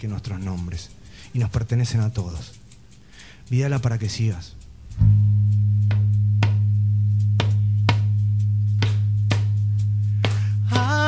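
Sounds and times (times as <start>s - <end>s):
frame drum strikes: 4.6s - 11.0s
low drone note: 4.6s - 11.0s.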